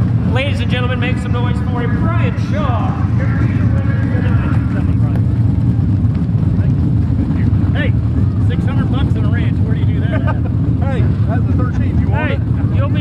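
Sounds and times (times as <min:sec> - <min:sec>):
people talking and calling: 0:00.0 - 0:13.0
race car engines rumbling: 0:00.0 - 0:13.0.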